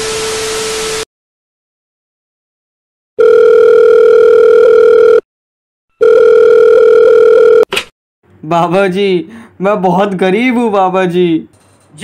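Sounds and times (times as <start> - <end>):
telephone ringback tone: 3.2 - 5.2, 6.0 - 7.7.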